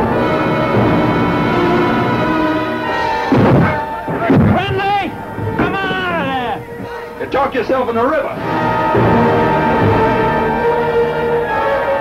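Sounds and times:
dramatic orchestral score: 0.0s - 12.0s.

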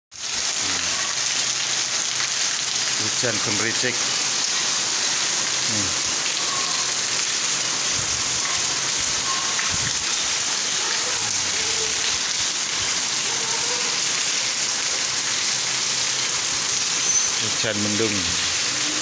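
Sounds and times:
heavy rain falling: 0.1s - 19.0s.

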